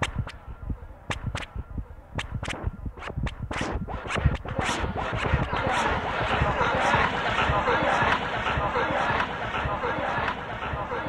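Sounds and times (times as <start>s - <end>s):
glitchy electronic music: 0.0s - 11.0s.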